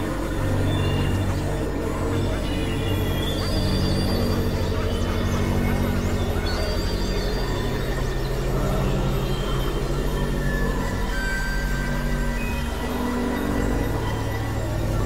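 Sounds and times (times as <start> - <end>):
low buzzing synthesizer drone: 0.0 - 15.0.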